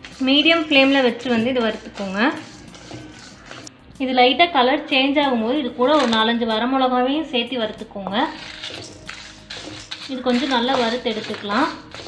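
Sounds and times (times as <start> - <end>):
spatula stirring dry grains: 0.0 - 3.7, 8.3 - 12.0
person speaking: 10.1 - 11.8.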